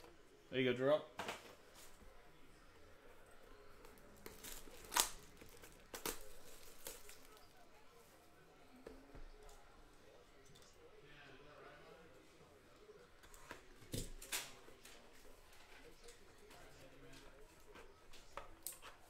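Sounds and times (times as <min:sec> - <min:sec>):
plastic wrap crinkling: 0:03.8 - 0:07.6.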